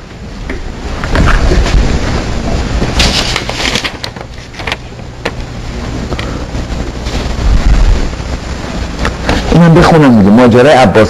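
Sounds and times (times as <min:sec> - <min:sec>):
steady low hum: 0:00.0 - 0:11.0
paper rustling and crackling: 0:01.1 - 0:05.4.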